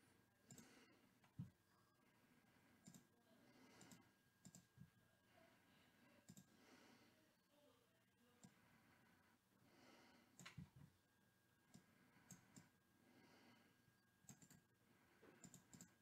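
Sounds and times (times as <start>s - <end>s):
soft clicks: 3.7s - 4.8s, 6.2s - 6.6s, 10.4s - 10.7s, 11.7s - 12.7s, 15.4s - 16.0s.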